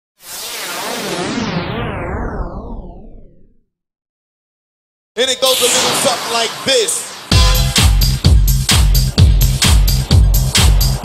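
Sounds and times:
synthesized whoosh: 0.2 - 3.5, 5.3 - 7.9.

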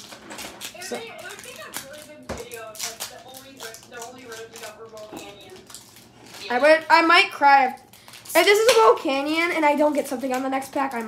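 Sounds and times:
faint voices: 0.7 - 8.4.

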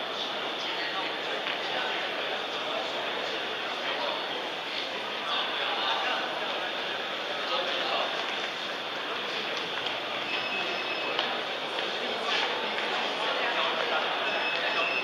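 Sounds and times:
crowd chatter in a hall: 0.0 - 15.0.

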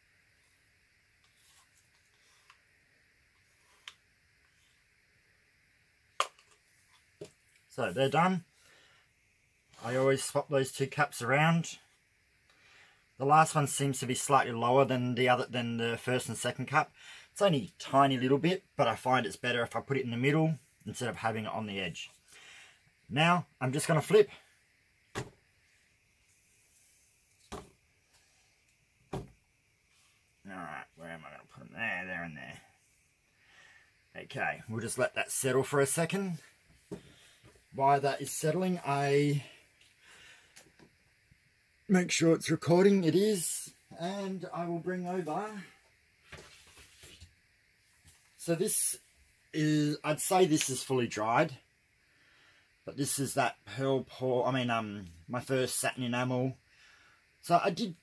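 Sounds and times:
stick scraping in plastic cups: 1.2 - 2.7, 3.4 - 4.8.

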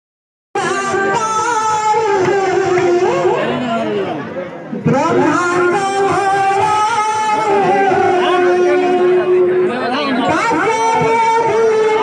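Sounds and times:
women singing through microphone: 0.6 - 3.5, 4.8 - 9.5, 10.3 - 12.0.

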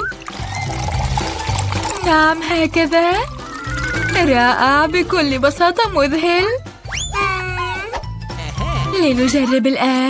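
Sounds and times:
milk pouring onto cereal: 0.0 - 4.5
background music: 0.0 - 10.0.

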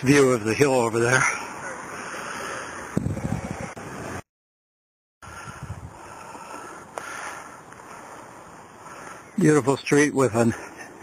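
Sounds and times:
wind buffeting microphone: 2.9 - 4.2, 5.2 - 6.1.

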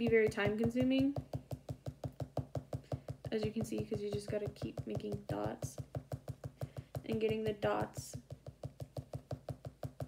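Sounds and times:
pen tip tapping on paper: 0.0 - 10.0.

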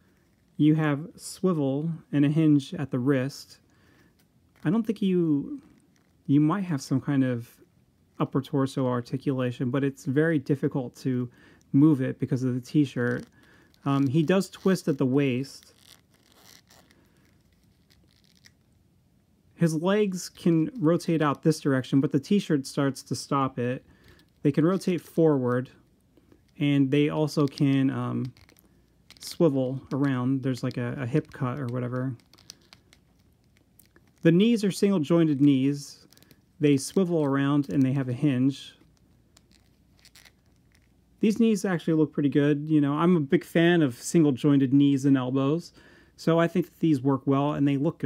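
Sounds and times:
plastic figure scraping: 11.8 - 18.8, 19.7 - 41.6
plastic figure clicks and scrapes: 27.3 - 34.4, 38.8 - 41.0.

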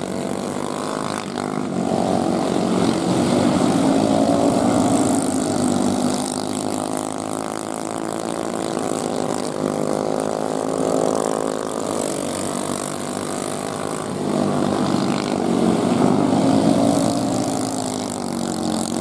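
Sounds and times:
small race car engines passing: 0.0 - 19.0.

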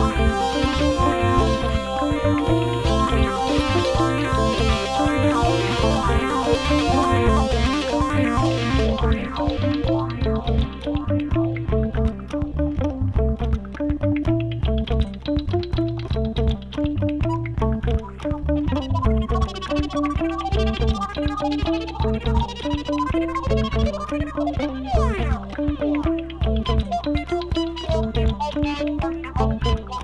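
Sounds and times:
hurdy-gurdy playing fast tune: 0.0 - 11.1
steady low pulse: 0.0 - 13.6.

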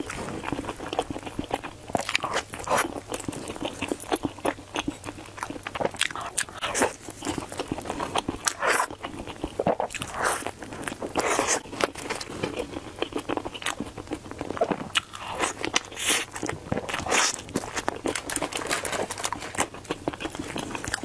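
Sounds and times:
chewing crunchy fried food: 0.0 - 21.0.

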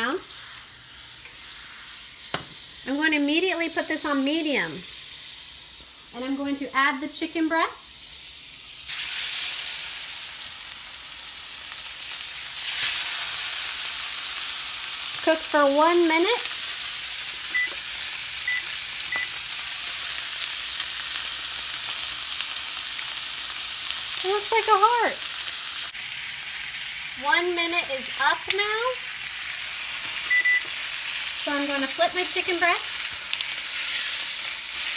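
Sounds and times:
chicken sizzling in a pan: 0.0 - 34.9.

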